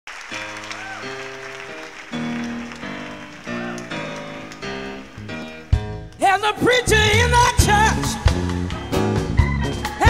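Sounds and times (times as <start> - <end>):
audience applause: 0.1 - 5.6
keyboard playing sustained chords: 0.4 - 10.0.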